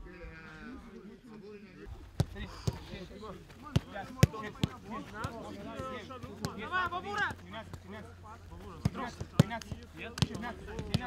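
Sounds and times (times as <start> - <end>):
footballs being kicked: 2.0 - 11.0.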